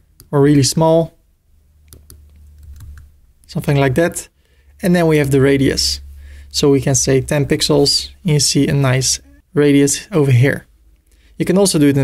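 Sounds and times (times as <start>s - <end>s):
steady low hum: 0.0s - 12.0s
computer keyboard keystrokes: 1.9s - 3.1s.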